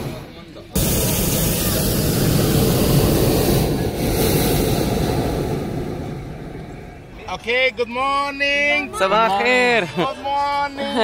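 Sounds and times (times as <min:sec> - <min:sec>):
propane burner roaring: 0:00.0 - 0:07.1.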